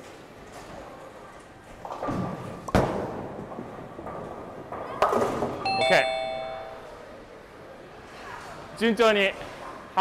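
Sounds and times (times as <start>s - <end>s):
two-note electronic chime: 5.7s - 6.9s.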